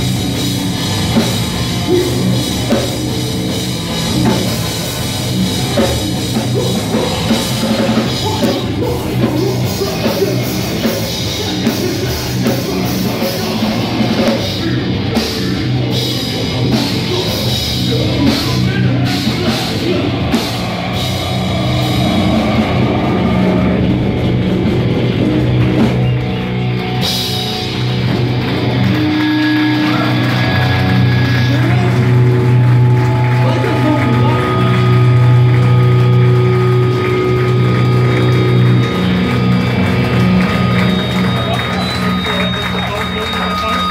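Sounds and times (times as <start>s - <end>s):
loud live hardcore band: 0.0s - 43.9s
low drone with ringing guitar: 0.0s - 43.9s.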